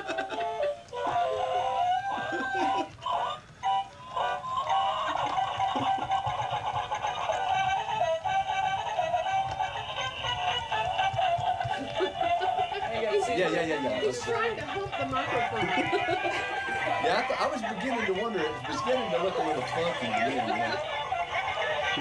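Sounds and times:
toy playing electronic tune: 0.3 - 22.0.

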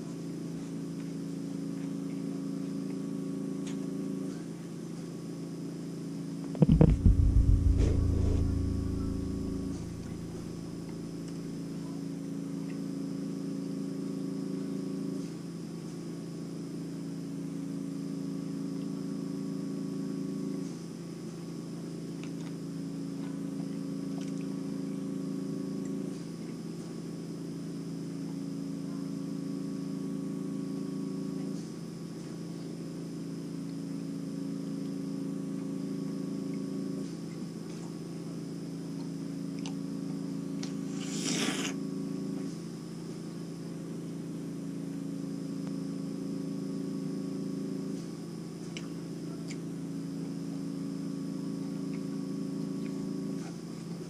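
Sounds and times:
steady low hum: 1.0 - 15.3, 27.7 - 54.0
loud low thud and rumble: 6.6 - 10.8.

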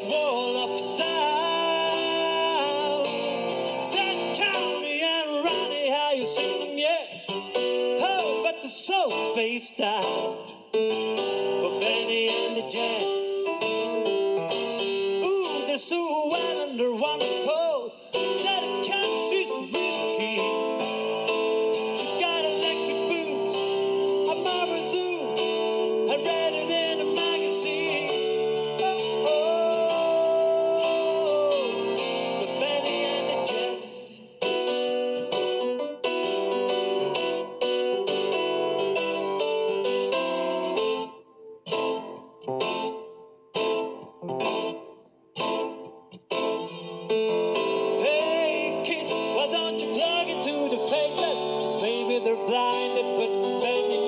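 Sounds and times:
live band playing: 0.0 - 54.0.

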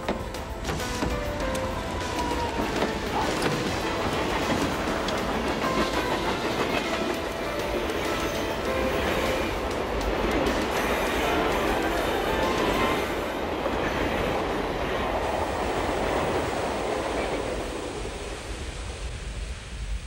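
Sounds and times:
music: 0.0 - 13.6.

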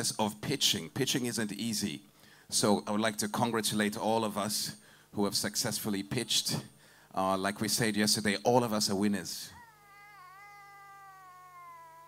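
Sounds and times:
baby's high-pitched cry: 9.6 - 12.0.

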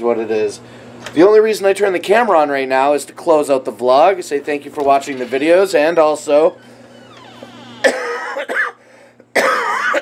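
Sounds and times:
man coughing: 7.8 - 10.0.

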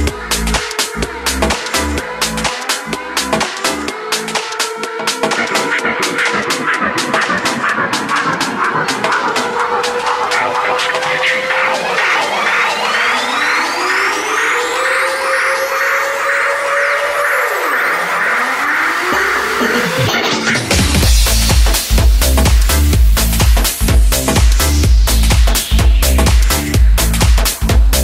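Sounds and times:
rising synth sweeps: 0.3 - 21.5
synth line sliding in pitch: 4.0 - 20.8.

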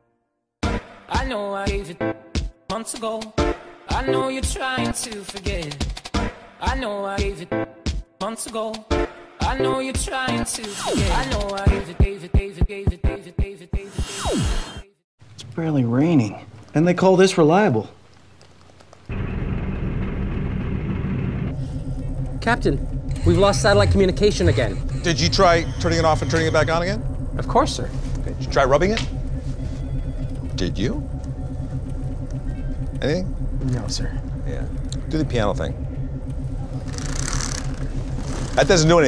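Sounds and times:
low rumbling engine hum: 15.2 - 39.0.

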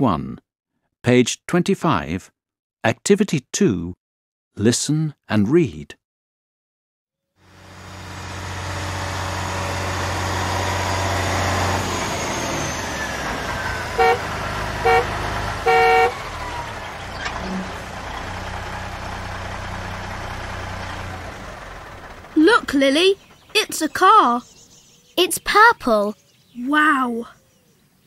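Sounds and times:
car engine running: 7.4 - 24.9
car horn beeping: 13.8 - 16.7.

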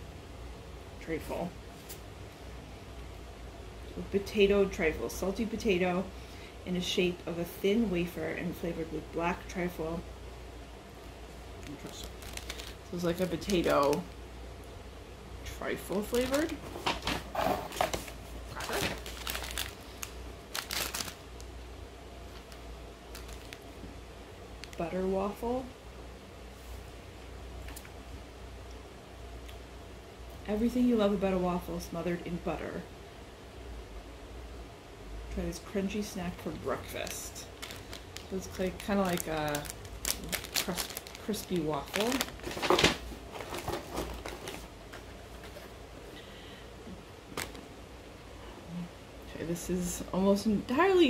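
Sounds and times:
snack packaging crinkling: 11.6 - 14.2, 15.8 - 16.6, 17.8 - 21.5, 22.3 - 23.8, 24.6 - 24.8, 36.8 - 44.7, 47.3 - 47.6.

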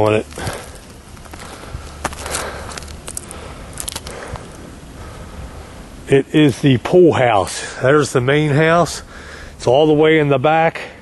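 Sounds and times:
scuffing and crackling footsteps: 0.0 - 4.6
low steady rumble: 0.0 - 11.0.

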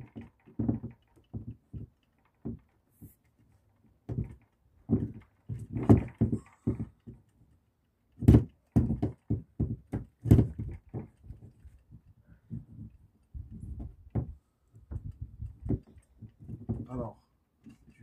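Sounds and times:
window frame knocking: 0.0 - 2.7, 4.0 - 7.3, 8.2 - 17.9.

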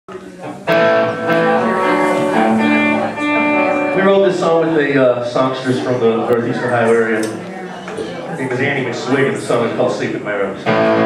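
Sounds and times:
electric guitars sliding notes: 0.6 - 5.0, 10.6 - 11.0.

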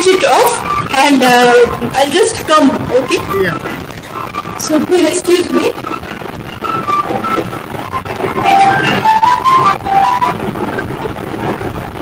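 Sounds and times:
steady noisy hiss: 0.0 - 12.0.

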